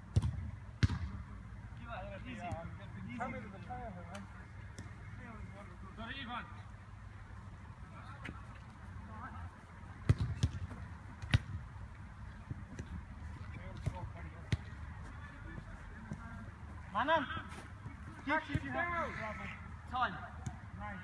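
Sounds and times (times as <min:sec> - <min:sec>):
ball being kicked: 0:00.1 - 0:01.2, 0:10.0 - 0:11.6.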